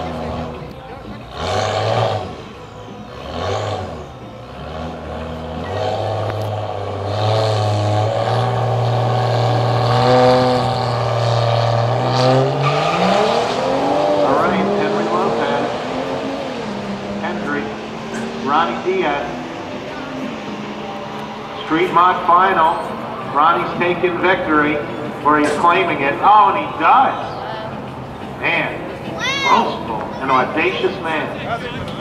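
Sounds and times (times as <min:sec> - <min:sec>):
car engines revving: 0:00.0 - 0:32.0
cars accelerating through gears: 0:00.0 - 0:32.0.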